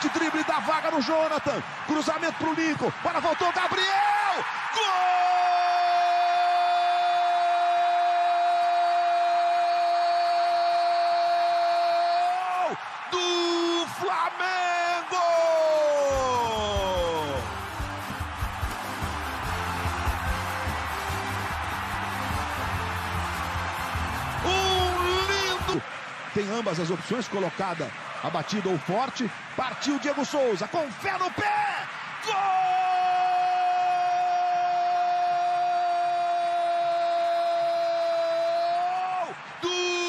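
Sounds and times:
football narrator shouting: 0:00.0 - 0:17.6, 0:24.4 - 0:40.0
stadium crowd noise: 0:00.0 - 0:40.0
music with stepping bass line: 0:16.8 - 0:24.8.

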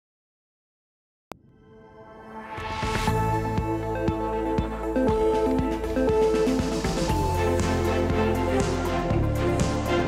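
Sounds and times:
electronic news theme music: 0:01.7 - 0:10.0.

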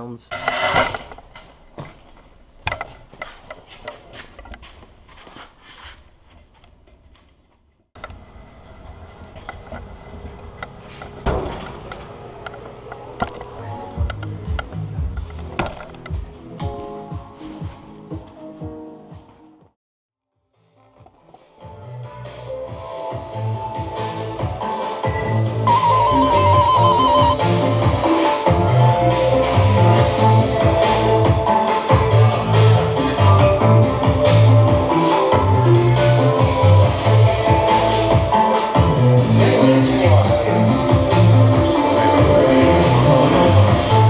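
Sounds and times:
music: 0:12.9 - 0:44.0.

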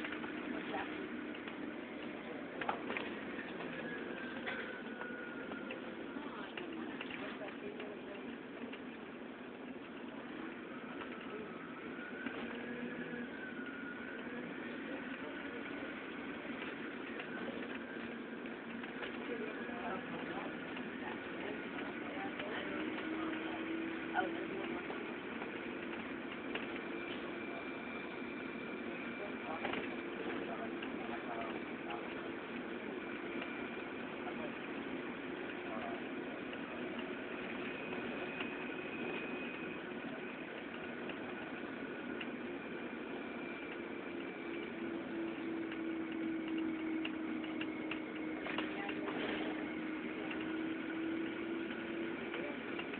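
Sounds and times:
road noise inside car: 0:00.0 - 0:52.9.

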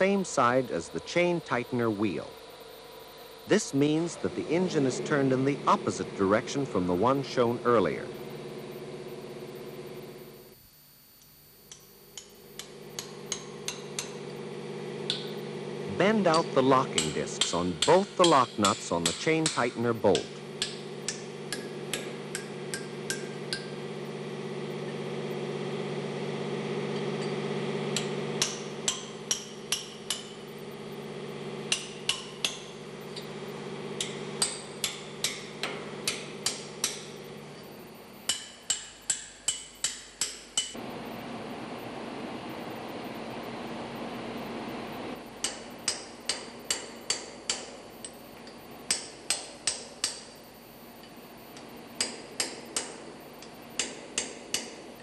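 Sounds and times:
steady background hum: 0:00.0 - 0:55.0
hammer striking steel chisel: 0:11.7 - 0:14.4, 0:16.2 - 0:23.8, 0:26.9 - 0:30.5, 0:31.7 - 0:33.4, 0:34.0 - 0:40.8, 0:45.4 - 0:50.4, 0:52.0 - 0:54.8.

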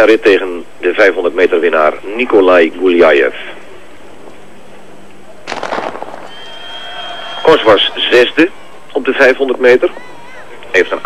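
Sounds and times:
starter's pistol crack: 0:05.5 - 0:06.3.

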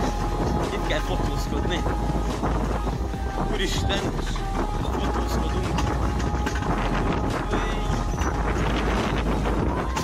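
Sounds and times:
sled wheels rumbling on rails: 0:00.0 - 0:10.0
wind buffeting microphone: 0:00.0 - 0:10.0.

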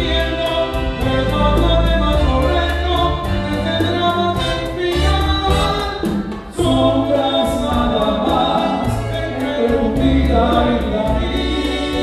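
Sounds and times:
dance orchestra playing: 0:00.0 - 0:12.0
man singing: 0:00.0 - 0:12.0.

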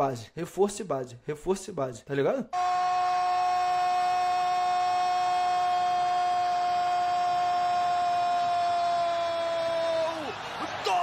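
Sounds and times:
narrator shouting goal cry: 0:02.5 - 0:11.0.

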